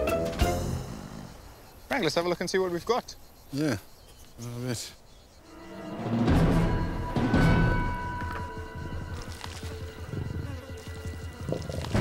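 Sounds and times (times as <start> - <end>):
background music: 0.0 - 1.1, 5.5 - 12.0
lion growling low: 11.3 - 12.0.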